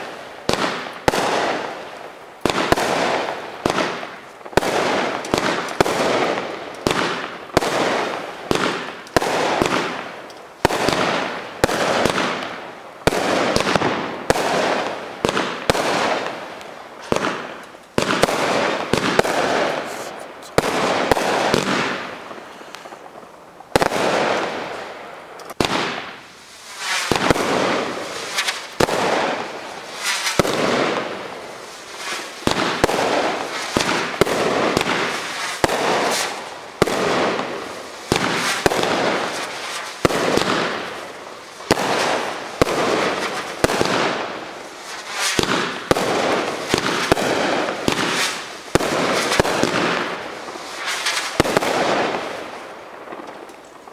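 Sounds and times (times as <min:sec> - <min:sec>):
crackling firework bursts: 0:00.0 - 0:53.9
firework cake shots: 0:02.5 - 0:23.1, 0:25.4 - 0:31.3, 0:31.9 - 0:41.0, 0:41.6 - 0:53.7.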